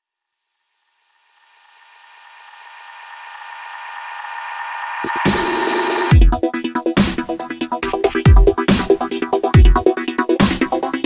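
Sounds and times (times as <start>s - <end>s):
electronic music build-up: 1.2s - 11.0s.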